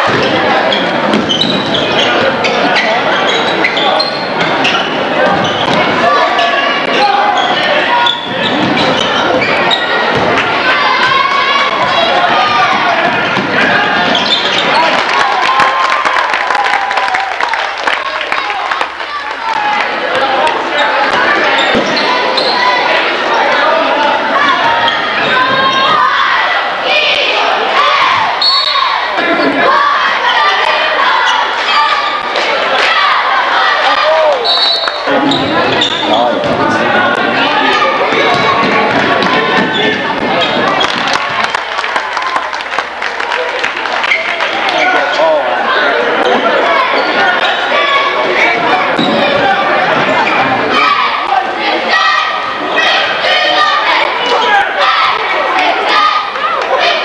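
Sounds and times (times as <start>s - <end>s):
spectators chattering and shouting: 0.0s - 57.0s
basketball bouncing on hardwood: 38.3s - 39.8s.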